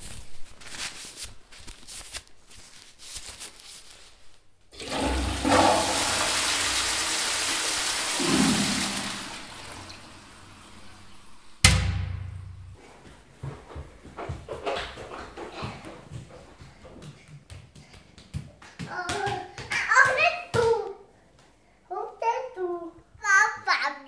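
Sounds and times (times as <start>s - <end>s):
toilet flushing: 4.7s - 11.7s
sharp bang: 11.6s - 12.8s.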